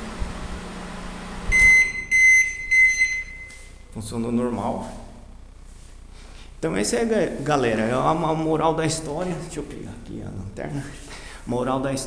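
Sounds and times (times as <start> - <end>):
microwave oven humming: 0.0 - 11.5
high beeps: 1.5 - 3.8.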